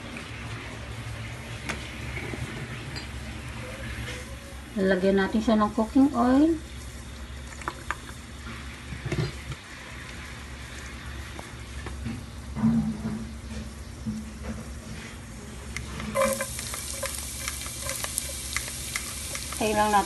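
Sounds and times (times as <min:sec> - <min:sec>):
oil heating in a pot: 0:00.0 - 0:20.0
garlic sizzling in hot oil: 0:13.3 - 0:20.0.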